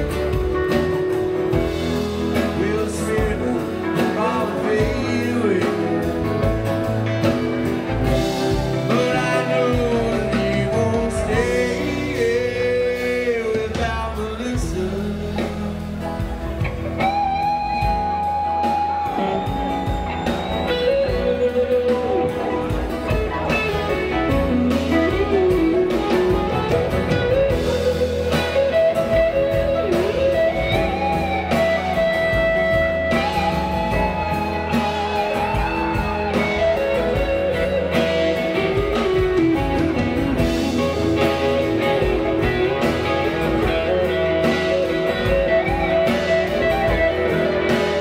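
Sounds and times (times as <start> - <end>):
lead guitar bending notes: 0.0 - 48.0
rock band playing ballad: 0.0 - 48.0.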